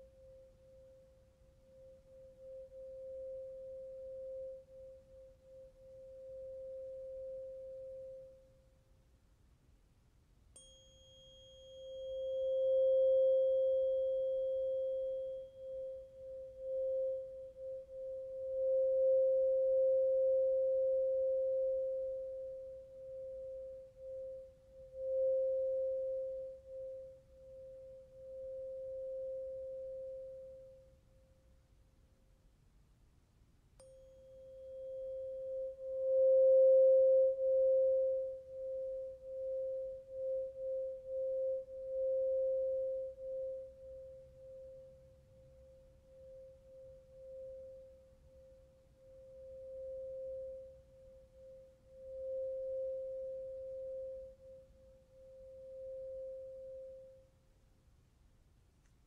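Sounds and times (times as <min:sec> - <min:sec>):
tuning fork struck ping: 0:00.0 - 0:08.6, 0:10.5 - 0:31.0, 0:33.8 - 0:57.3
tuning fork ringing: 0:00.0 - 0:08.8, 0:10.5 - 0:31.5, 0:33.8 - 0:57.4.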